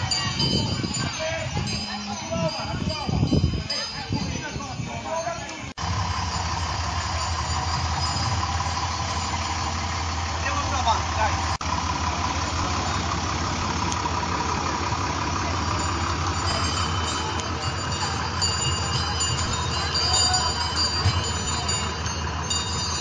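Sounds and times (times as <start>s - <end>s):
tractor diesel engine idling: 0.0s - 23.0s.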